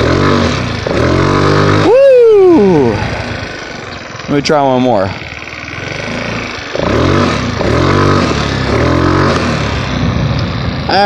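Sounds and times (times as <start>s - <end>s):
scooter engine revving hard: 0.0s - 11.0s.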